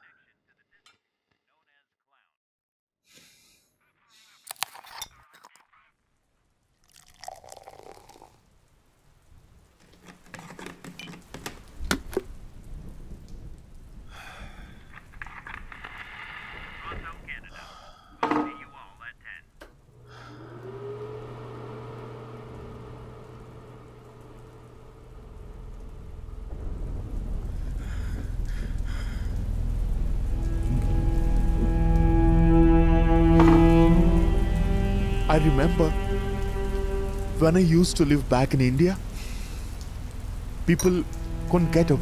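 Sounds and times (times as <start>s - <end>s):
rain-like patter: 6.0s - 42.0s
low musical drone: 20.1s - 42.0s
bowed string chord: 29.7s - 42.0s.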